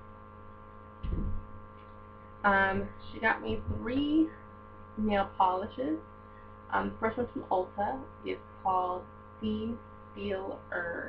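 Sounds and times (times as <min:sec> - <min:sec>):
electrical mains hum: 0:00.0 - 0:11.0
dull handling thump: 0:01.0 - 0:01.6.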